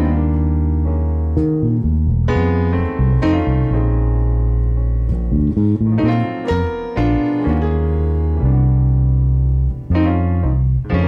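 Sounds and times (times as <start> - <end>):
electric bass: 0.0 - 11.0
keyboard chords: 0.0 - 11.0.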